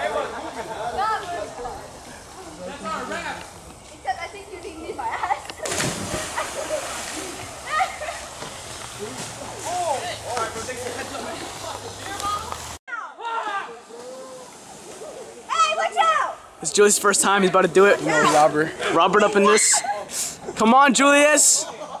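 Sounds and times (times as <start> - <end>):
loud splash into river: 5.6 - 8.2
water churning: 5.6 - 12.8.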